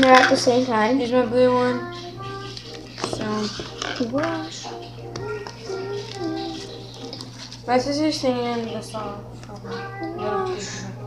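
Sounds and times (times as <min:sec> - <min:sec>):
girl singing: 0:00.0 - 0:07.1, 0:07.7 - 0:11.0
steady low hum: 0:00.0 - 0:11.0.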